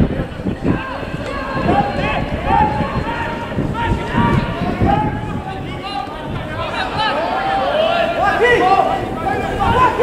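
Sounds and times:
men shouting: 0.7 - 10.0.

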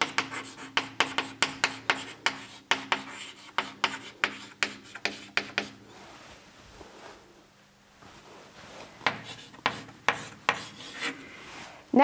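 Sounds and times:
chalk writing on blackboard: 0.0 - 5.8, 9.0 - 11.2
faint steady hum: 0.0 - 12.0.

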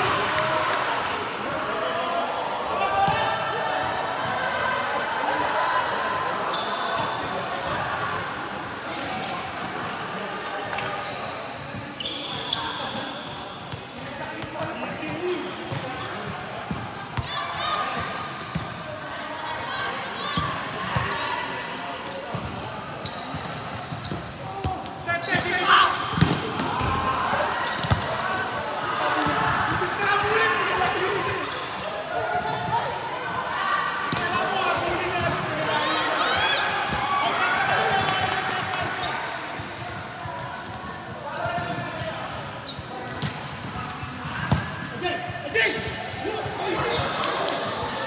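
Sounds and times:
players' voices: 0.0 - 48.0
volleyball hits and bounces: 26.1 - 27.0.

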